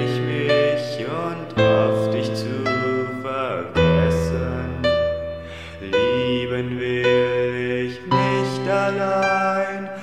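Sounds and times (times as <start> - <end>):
piano notes: 0.0 - 10.0.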